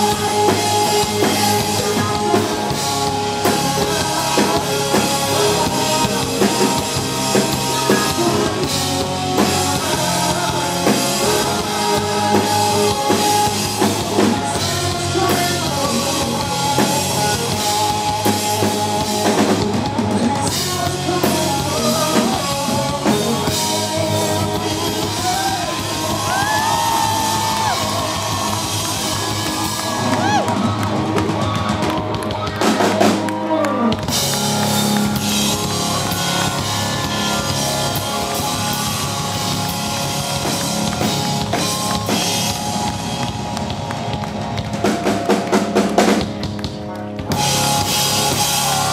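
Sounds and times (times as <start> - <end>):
rock band playing: 0.0 - 48.9.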